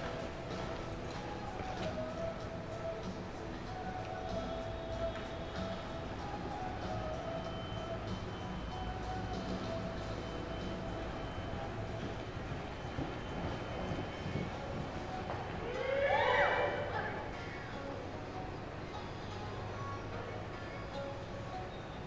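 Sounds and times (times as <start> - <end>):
faint music: 0.0 - 22.0.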